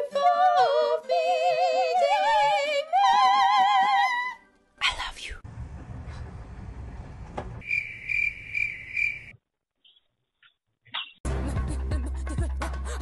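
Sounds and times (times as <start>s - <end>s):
outdoor background rumble: 5.4s - 7.7s.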